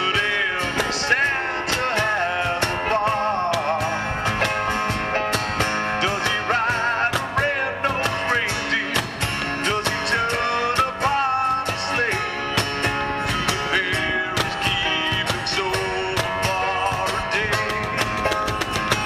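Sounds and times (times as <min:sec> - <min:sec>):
male lead vocal: 0:00.0 - 0:04.8, 0:05.8 - 0:19.0
cajon beat: 0:00.0 - 0:19.0
strummed acoustic guitars: 0:00.0 - 0:19.0.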